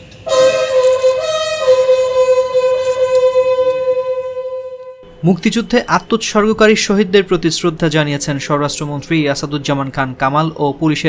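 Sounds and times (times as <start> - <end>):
bugle long steady note: 0.2 - 5.2
second higher note: 0.3 - 5.1.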